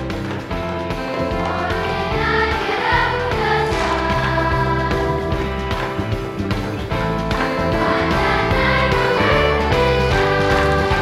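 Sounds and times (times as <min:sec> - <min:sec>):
children's choir singing jazz: 0:00.0 - 0:11.0
instrumental accompaniment with bass: 0:00.0 - 0:11.0.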